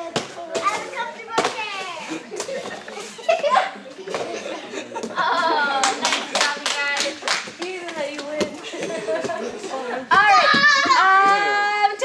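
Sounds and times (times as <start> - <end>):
children's voices: 0.0 - 4.6, 10.0 - 12.0
hand claps: 5.8 - 8.4.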